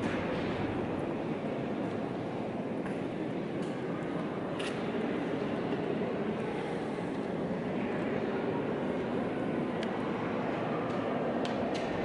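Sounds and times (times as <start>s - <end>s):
church interior murmur: 0.0s - 12.0s.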